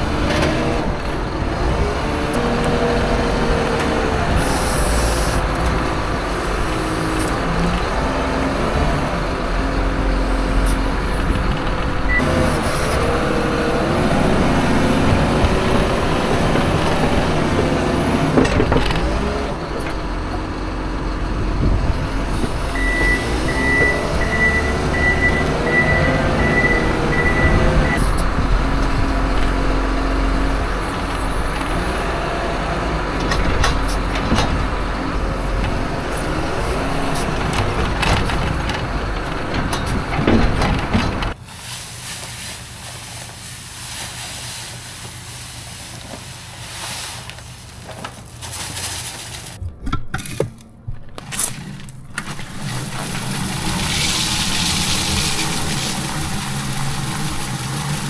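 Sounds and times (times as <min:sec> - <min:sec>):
diesel engine revving: 0:00.0 - 0:48.2
reversing alarm beeping: 0:22.8 - 0:28.1.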